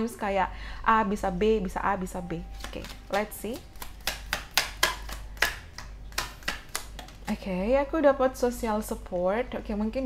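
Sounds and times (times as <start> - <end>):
paper cards flicked by hand: 2.6 - 7.3.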